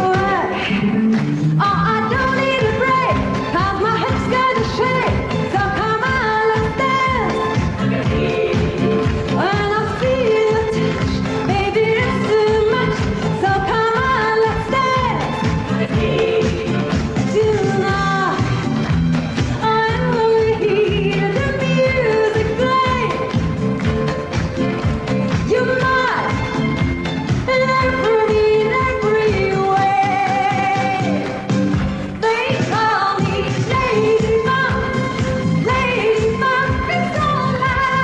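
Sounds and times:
woman singing disco song: 0:00.0 - 0:38.0
band playing steady beat: 0:06.6 - 0:28.2.

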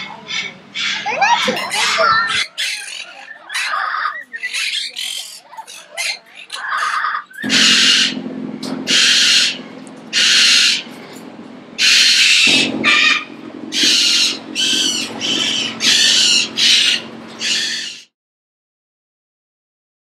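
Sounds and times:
cockatoos screeching: 0:00.0 - 0:08.2, 0:10.2 - 0:10.9, 0:11.8 - 0:18.1
steady low hum: 0:07.4 - 0:18.1.

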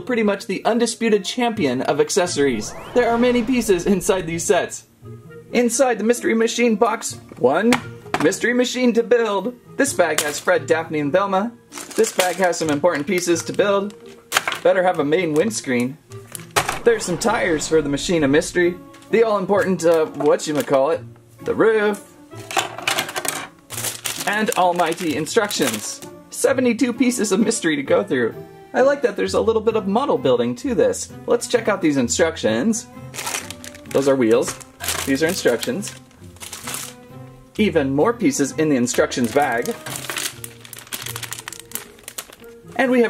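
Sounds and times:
background music: 0:00.0 - 0:43.0
plastic bags crinkling: 0:11.7 - 0:14.6, 0:23.7 - 0:26.1, 0:33.1 - 0:37.1, 0:38.9 - 0:42.6.

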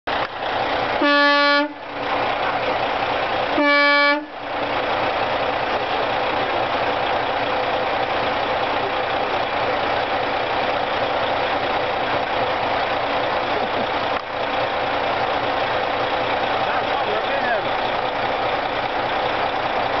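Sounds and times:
truck air horn toot: 0:01.0 - 0:01.8, 0:03.5 - 0:04.4.

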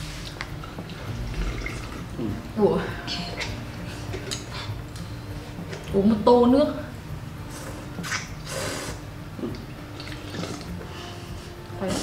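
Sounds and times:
slurping noodles and broth: 0:07.5 - 0:10.7.

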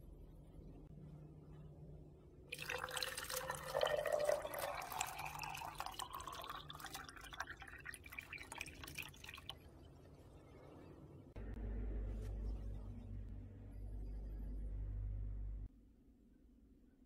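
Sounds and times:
liquid pouring into plastic cup: 0:02.5 - 0:09.6.

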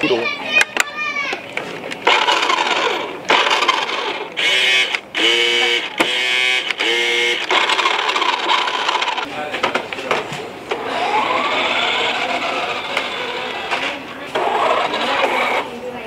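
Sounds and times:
toy car motors whirring: 0:02.0 - 0:09.3, 0:10.7 - 0:15.9.

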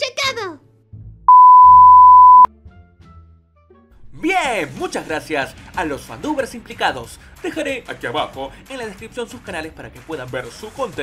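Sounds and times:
electronic beep: 0:01.3 - 0:02.5.

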